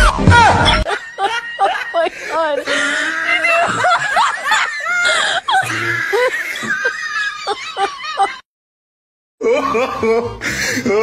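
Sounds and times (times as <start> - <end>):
person laughing: 0.4 - 8.4, 9.4 - 11.0.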